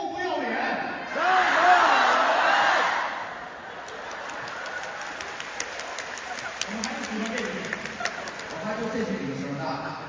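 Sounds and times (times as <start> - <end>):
hand claps: 3.8 - 9.1.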